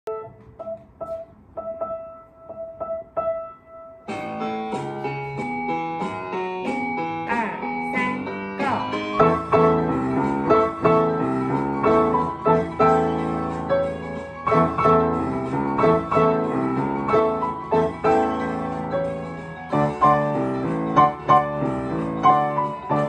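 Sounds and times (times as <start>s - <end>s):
piano chords and bass notes: 0.0s - 23.0s
piano melody: 0.0s - 23.0s.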